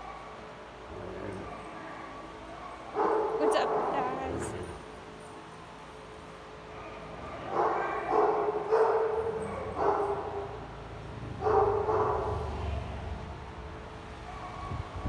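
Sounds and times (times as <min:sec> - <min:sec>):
dog barking: 0:01.3 - 0:04.6, 0:06.7 - 0:10.8, 0:11.4 - 0:13.0, 0:14.2 - 0:15.0.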